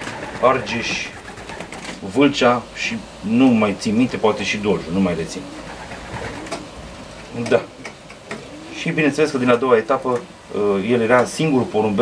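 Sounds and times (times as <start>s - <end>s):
pigeons cooing: 0.0s - 2.1s, 3.8s - 12.0s
person speaking: 0.4s - 1.2s, 2.0s - 5.5s, 7.3s - 7.8s, 8.7s - 12.0s.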